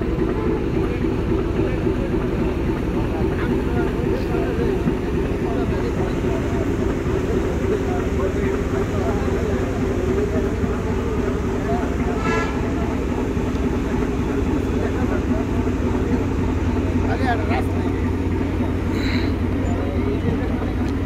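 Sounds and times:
ferry diesel engines droning: 0.0 - 21.0
voices in background: 0.0 - 21.0
short high horn toot: 12.1 - 12.8.

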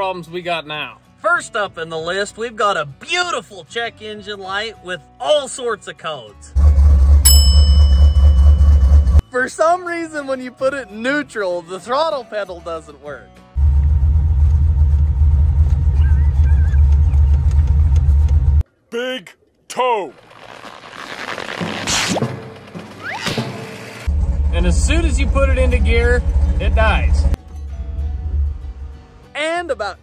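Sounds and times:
car engine idling: 6.6 - 9.2, 13.6 - 18.6, 23.7 - 29.3
bell-like ding: 7.2 - 9.2
rising whistle-like sound effects: 15.8 - 17.4.

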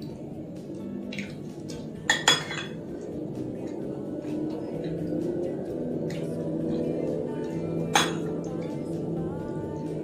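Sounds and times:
background music: 0.0 - 10.0
metal spoon clinking ceramic bowl: 2.1 - 2.8, 7.9 - 8.4.

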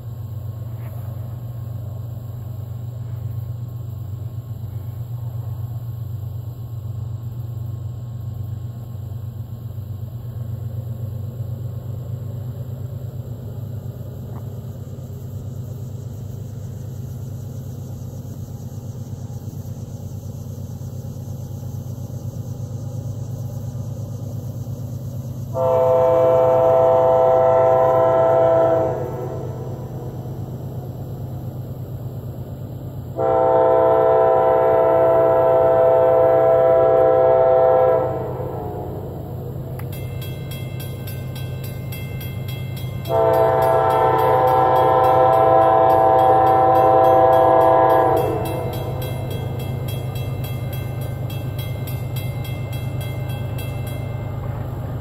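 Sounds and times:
train rumble: 0.0 - 55.0
locomotive air horn blasts: 25.5 - 30.0, 33.2 - 39.2, 43.0 - 49.5.

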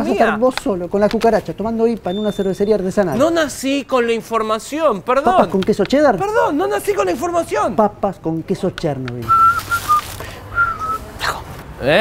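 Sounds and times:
man whistling: 9.2 - 11.1.

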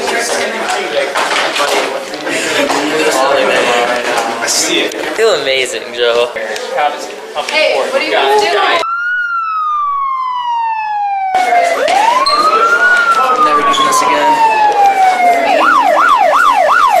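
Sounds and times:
police siren wailing and yelping: 8.8 - 17.0.

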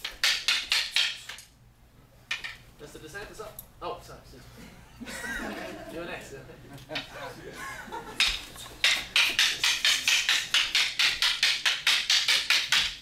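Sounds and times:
wooden sticks clacking: 0.0 - 1.5, 2.3 - 2.6, 6.8 - 7.1, 8.2 - 13.0.

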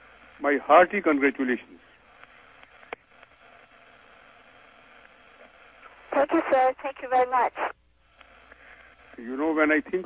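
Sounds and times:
faint radio hiss: 0.0 - 10.0.

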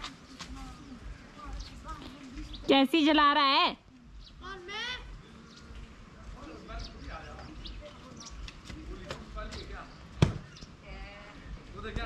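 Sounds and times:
faint distant voices: 0.0 - 12.0
loud thump: 10.2 - 10.6.

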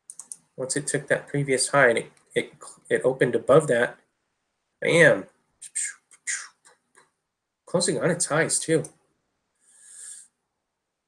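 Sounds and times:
person's faint breath: 9.6 - 10.4.

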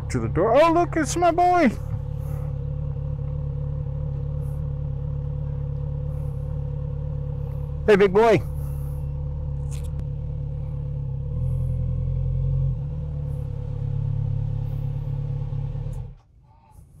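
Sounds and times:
motorcycle engine idling: 0.0 - 17.0.

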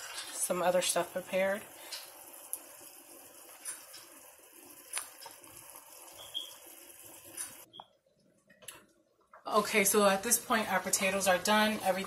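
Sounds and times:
broth bubbling in a pot: 0.0 - 7.8.

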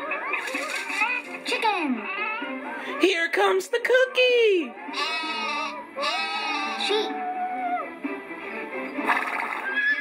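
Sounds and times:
background music: 0.0 - 10.0
horse whinny: 9.6 - 10.0.

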